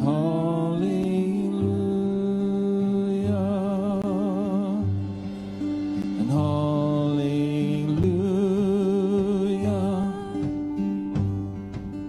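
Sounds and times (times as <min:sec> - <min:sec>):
man singing a long note: 0:00.0 - 0:05.0, 0:06.2 - 0:10.5
acoustic guitars: 0:00.0 - 0:12.0.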